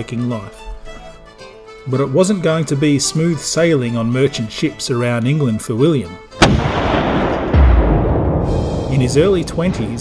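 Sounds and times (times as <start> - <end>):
cannon blast with rumble: 6.4 - 10.0
deep boom: 6.4 - 10.0.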